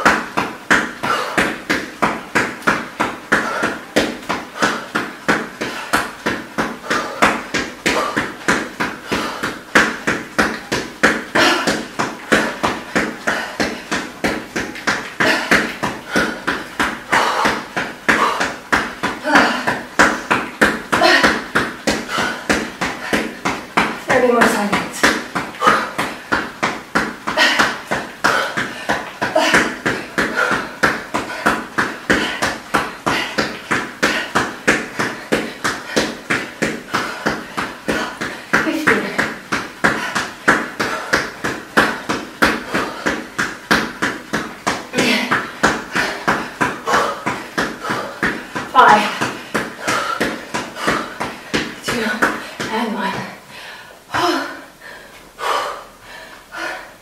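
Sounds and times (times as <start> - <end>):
footfalls thumping on exercise mat: 0.0 - 53.4
hard breathing: 1.0 - 1.8, 2.7 - 10.1, 11.1 - 24.0, 24.9 - 57.0.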